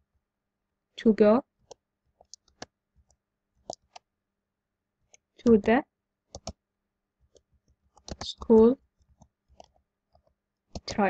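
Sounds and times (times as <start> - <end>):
computer keyboard key clicks: 6.4 - 6.6, 10.8 - 11.0.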